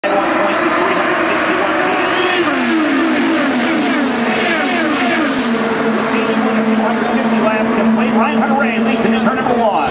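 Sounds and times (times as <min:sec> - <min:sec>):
blend of engine noise: 0:00.0 - 0:09.9
race cars passing: 0:00.0 - 0:09.9.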